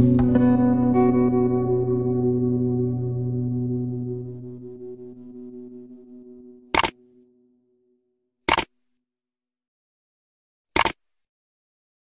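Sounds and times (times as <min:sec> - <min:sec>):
musical tone: 0:00.0 - 0:07.6
double click sound effects: 0:06.8 - 0:07.0, 0:08.5 - 0:08.7, 0:10.8 - 0:11.0.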